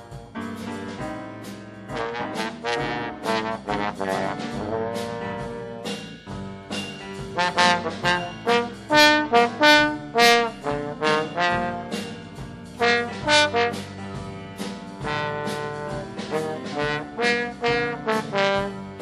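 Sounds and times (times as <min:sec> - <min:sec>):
jazz trombone solo: 0:00.0 - 0:19.0
quiet band accompaniment: 0:00.0 - 0:19.0.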